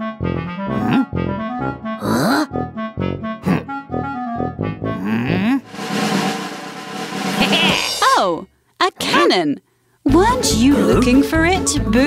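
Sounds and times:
falling cartoon vocal sound: 0:02.0 - 0:02.5, 0:05.0 - 0:05.7, 0:07.4 - 0:08.2
short rising pitched sound: 0:05.6 - 0:07.9
snare drum roll: 0:05.6 - 0:08.0.

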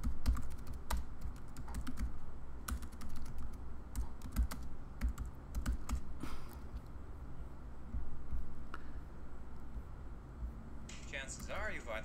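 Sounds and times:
typing on computer keyboard: 0:00.0 - 0:02.1, 0:02.7 - 0:06.0.

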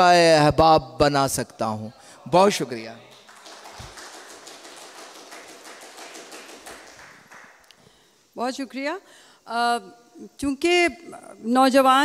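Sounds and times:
audience applauding: 0:03.1 - 0:07.7.

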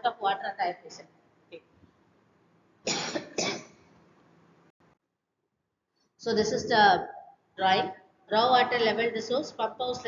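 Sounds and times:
person coughing: 0:02.9 - 0:03.8.

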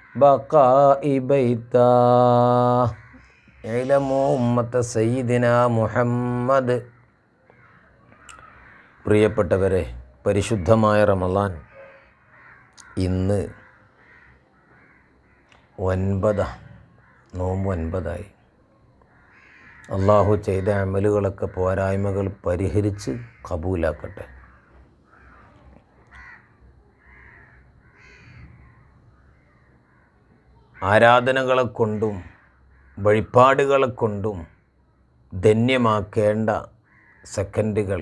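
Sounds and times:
crows cawing: 0:00.0 - 0:00.6, 0:02.7 - 0:04.8, 0:06.8 - 0:35.1, 0:36.4 - 0:37.5
man's voice: 0:03.6 - 0:06.9.

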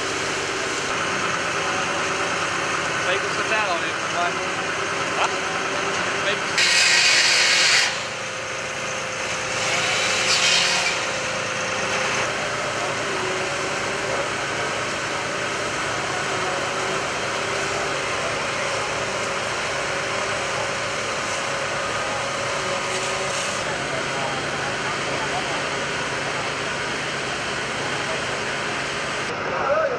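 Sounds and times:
power cutter cutting metal: 0:00.0 - 0:29.3
fire engine engines droning: 0:00.0 - 0:29.9.

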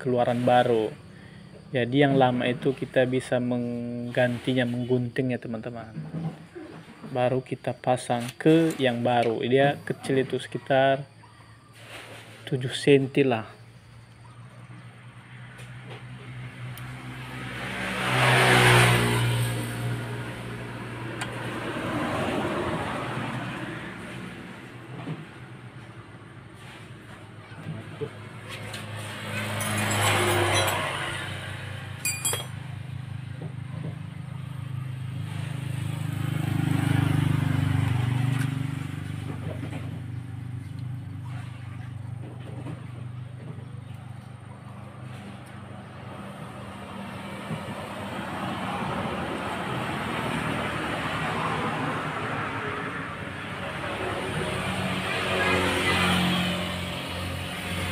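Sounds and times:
passing road traffic: 0:08.0 - 0:12.5, 0:13.2 - 0:57.9
motorcycle engine: 0:14.7 - 0:57.9.

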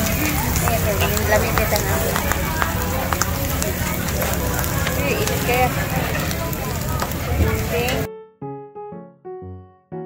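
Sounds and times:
chatter of voices: 0:00.0 - 0:08.1
meat sizzling on grill: 0:00.0 - 0:08.1.

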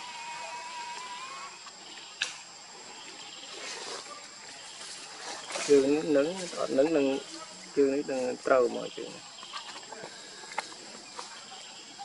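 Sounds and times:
high insect drone: 0:00.0 - 0:12.0.

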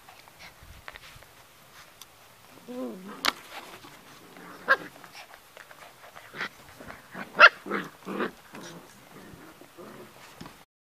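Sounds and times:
puppies yipping and barking: 0:06.0 - 0:08.8.

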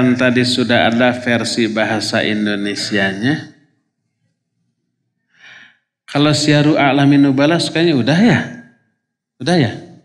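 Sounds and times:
man breathing softly: 0:05.2 - 0:05.9.

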